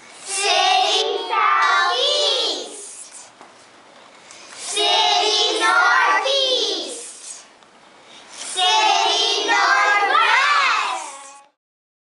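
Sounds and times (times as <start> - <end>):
children singing a held note: 8.4 - 11.6.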